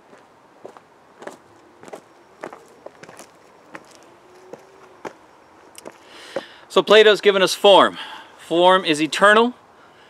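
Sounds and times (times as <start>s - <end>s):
footsteps on dry leaves: 0.6s - 5.2s.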